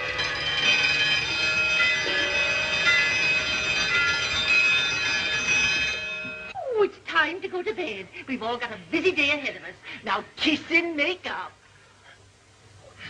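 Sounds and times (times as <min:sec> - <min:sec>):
many clocks chiming: 0:00.0 - 0:06.6.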